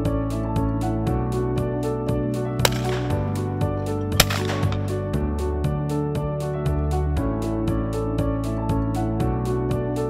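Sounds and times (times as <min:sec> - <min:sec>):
shotgun shots with echo: 0:02.6 - 0:05.2.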